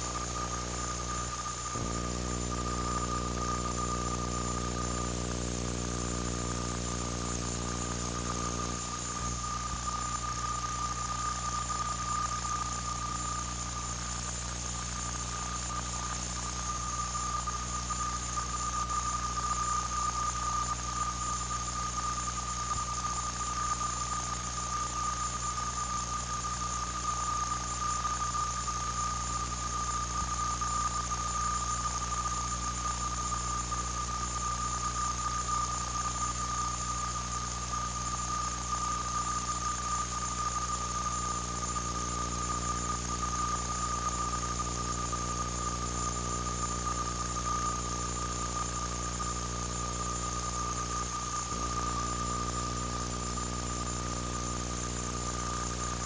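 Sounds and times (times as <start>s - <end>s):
low hum and hiss: 0.0s - 13.5s
high-pitched electronic whine: 0.0s - 56.0s.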